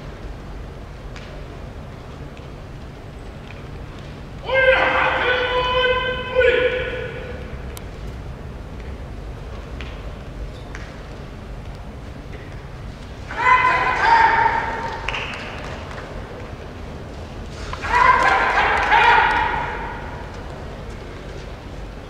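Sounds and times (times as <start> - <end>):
low hum of arena: 0.0 - 22.0
referee calling out: 4.4 - 7.6, 13.2 - 15.3, 17.7 - 20.5.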